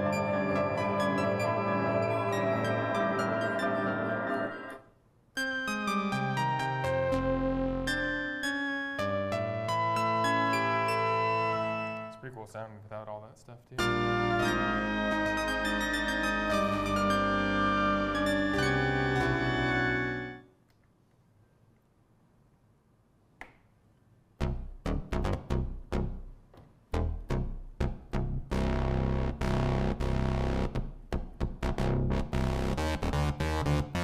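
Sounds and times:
synthesizer playing brassy chords: 0.0s - 12.3s, 13.8s - 20.5s, 27.0s - 34.0s.

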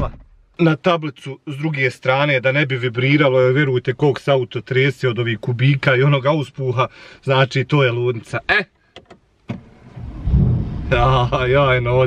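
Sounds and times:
car engine starting: 9.5s - 12.0s.

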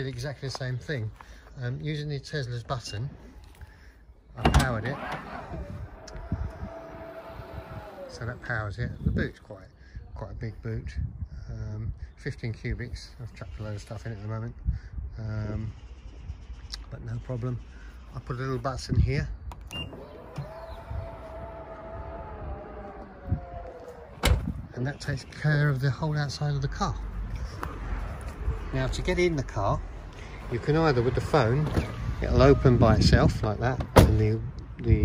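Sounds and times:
electric motor whine: 4.9s - 8.5s, 19.9s - 24.6s.

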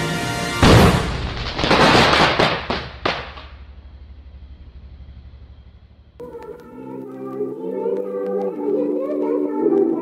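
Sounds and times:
crackling explosion blast: 0.6s - 3.7s.

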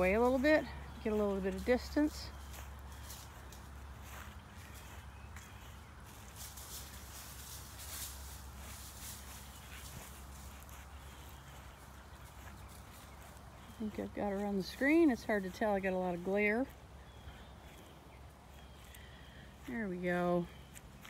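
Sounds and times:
footsteps on grass: 0.0s - 21.0s.

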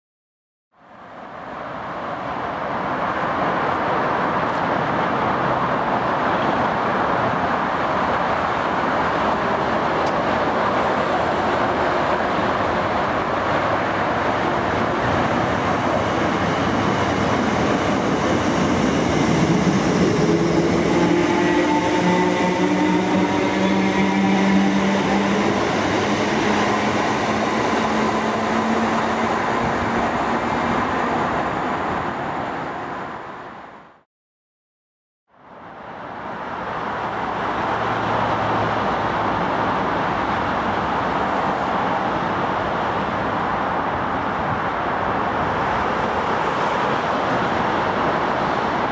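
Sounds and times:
train wheel and rail noise: 1.0s - 33.9s, 35.3s - 48.9s.

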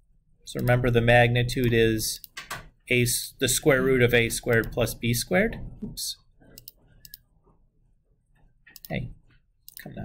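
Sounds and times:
computer mouse clicks: 6.5s - 7.3s, 8.7s - 9.9s.

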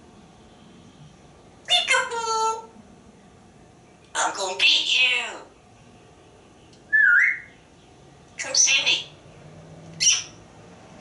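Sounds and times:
parrot whistling: 6.9s - 7.5s, 10.0s - 10.4s.

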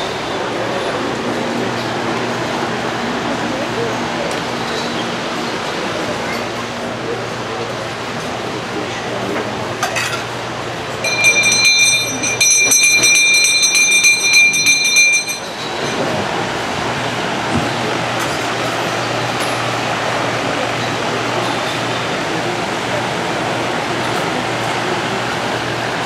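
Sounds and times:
electric fan rushing and humming: 0.0s - 26.0s
metal bell ringing rapidly: 11.0s - 16.4s.

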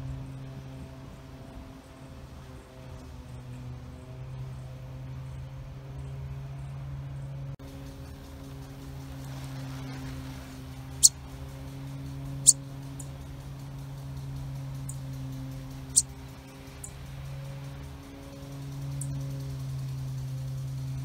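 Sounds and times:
steady low hum: 0.0s - 21.0s
sparrow begging chirps: 12.4s - 12.6s.

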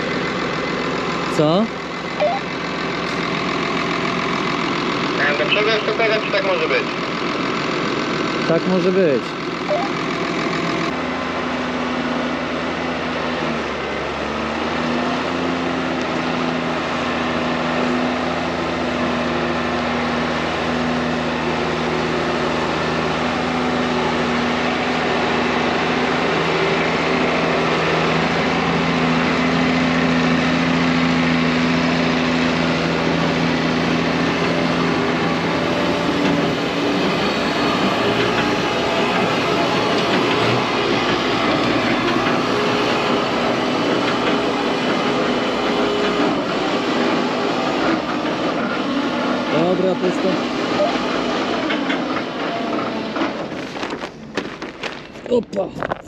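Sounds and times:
tractor engine under load: 0.0s - 56.0s.

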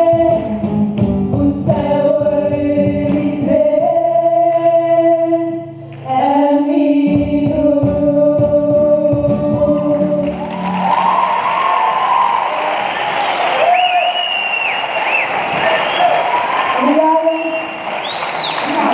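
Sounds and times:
group of voices singing: 0.0s - 0.6s, 1.4s - 10.8s
acoustic guitar: 0.0s - 11.7s
audience applauding: 10.2s - 18.9s
shouted cheers: 10.4s - 18.9s.

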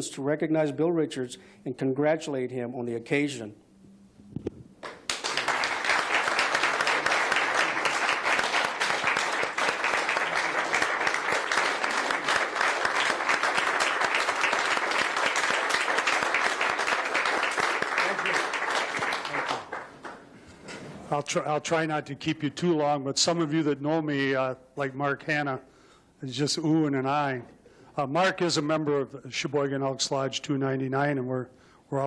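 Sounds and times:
crowd applauding: 4.8s - 20.4s.

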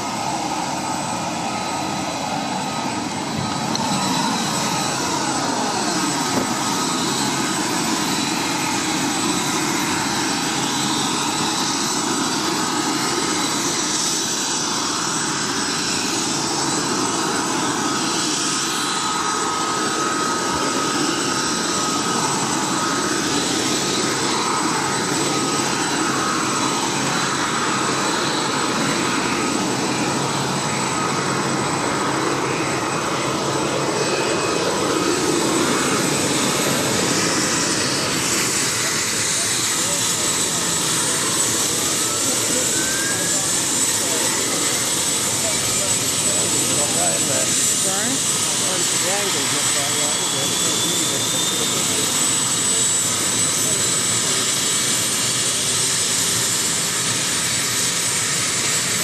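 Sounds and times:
helicopter engine and rotor noise: 0.0s - 59.0s.

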